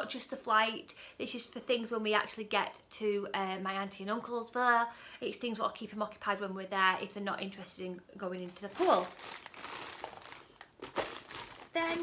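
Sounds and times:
rustling toy packaging: 8.5s - 12.0s.

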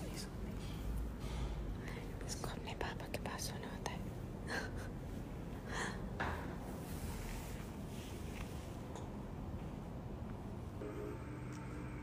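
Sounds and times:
soft breathy whispering: 0.0s - 4.9s.

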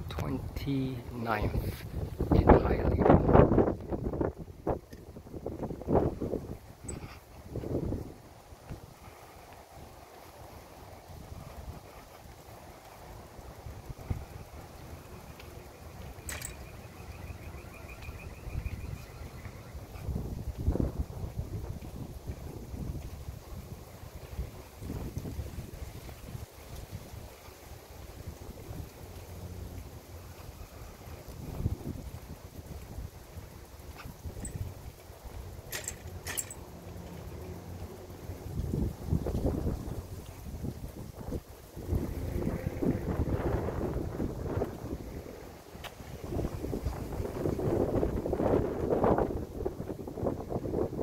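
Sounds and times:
wind buffeting microphone: 0.0s - 51.0s.

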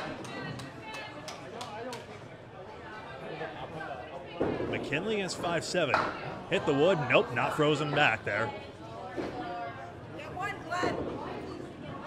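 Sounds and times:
chatter of people: 0.0s - 12.0s.

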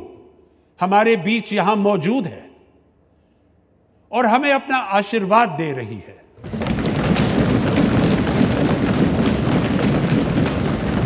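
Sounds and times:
hands thumping on wooden desks: 6.4s - 11.0s.

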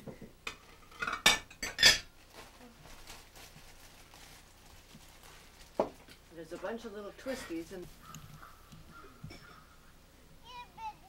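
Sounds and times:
dishes and cutlery clattering: 0.4s - 2.1s.

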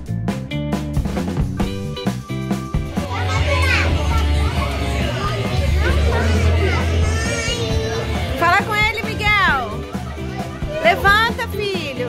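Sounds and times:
music with steady bass line: 0.0s - 12.0s
children's excited voices and squeals: 2.9s - 12.0s.

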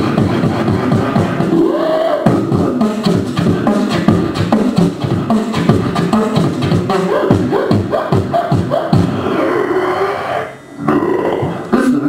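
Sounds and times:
beatboxer long vocal sound: 0.0s - 12.0s.

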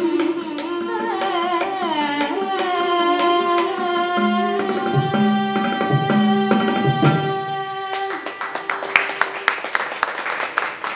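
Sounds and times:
violin: 0.0s - 8.8s
woman singing: 0.0s - 8.8s
hand drum strokes: 0.8s - 7.5s
audience clapping: 7.9s - 10.9s.

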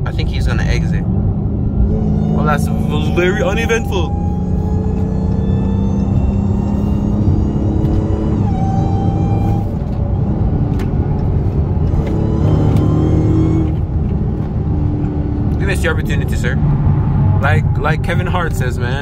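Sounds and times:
car engine accelerating: 0.0s - 19.0s
supercharger whine: 0.0s - 19.0s.

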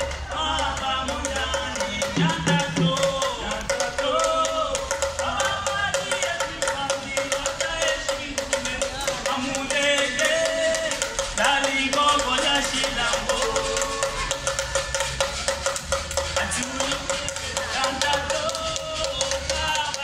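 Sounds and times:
drums: 0.0s - 20.0s
fast percussion strokes: 0.0s - 20.0s
person singing: 0.2s - 14.8s, 16.4s - 20.0s.

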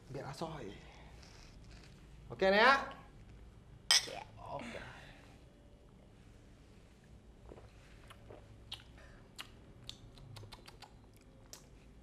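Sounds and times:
low room hum: 0.0s - 12.0s
lip smacks and mouth clicks: 7.5s - 12.0s.

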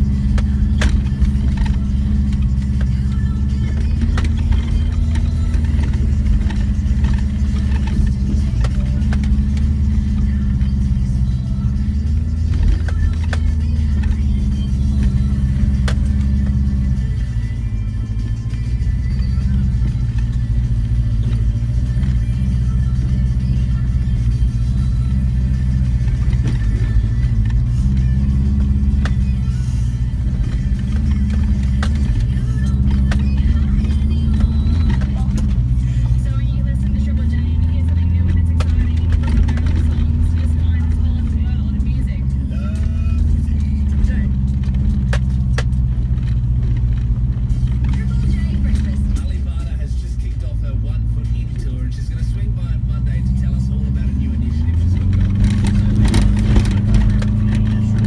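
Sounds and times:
car engine pulling uphill: 0.0s - 58.0s.

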